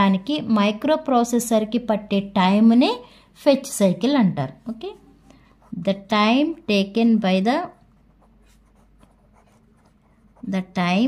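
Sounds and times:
pen scratching on paper: 5.6s - 7.0s, 7.6s - 10.9s.

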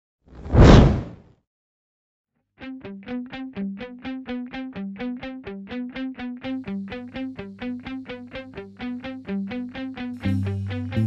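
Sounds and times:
whoosh sound effect: 0.4s - 1.2s.

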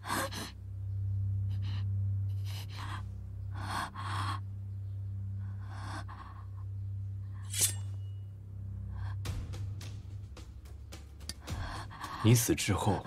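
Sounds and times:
steady low drone: 0.0s - 13.0s.

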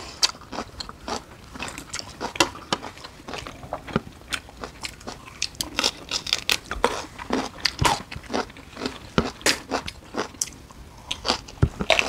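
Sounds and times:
people chewing and biting: 0.0s - 12.0s.

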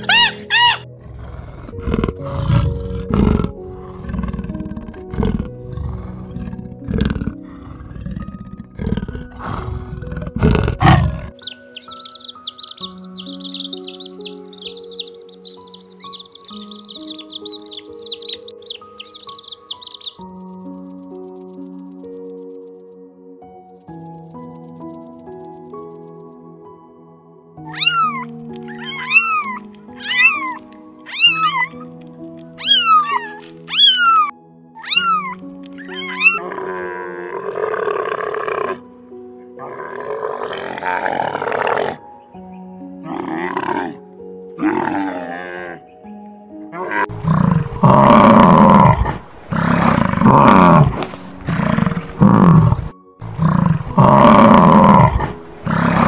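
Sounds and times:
deep roaring calls: 0.0s - 20.2s, 27.7s - 31.8s, 32.6s - 38.8s, 39.6s - 42.0s, 46.7s - 56.0s
rough grunting calls: 0.0s - 20.4s, 27.7s - 31.9s, 32.6s - 38.8s, 46.7s - 56.0s
soft background music: 0.0s - 56.0s
short falling animal calls: 27.7s - 31.8s, 32.6s - 36.4s.

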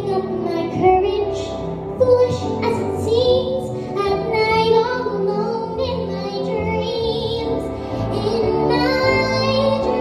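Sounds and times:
girl singing into microphone: 0.0s - 10.0s
instrumental accompaniment: 0.0s - 10.0s.

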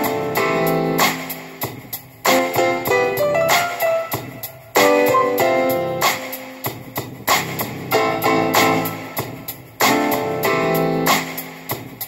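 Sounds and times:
synthesizer playing piano-like chords: 0.0s - 6.9s, 7.9s - 11.6s.

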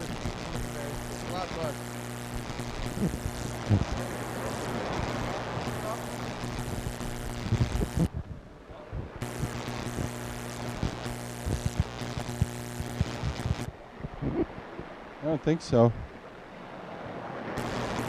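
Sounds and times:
electrical buzz hum: 0.0s - 15.1s, 17.4s - 18.0s.

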